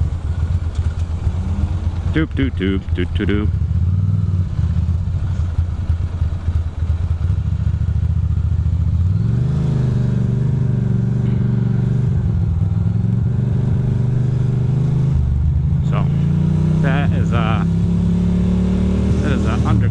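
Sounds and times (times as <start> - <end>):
motorcycle engine revving: 0.0 - 19.9.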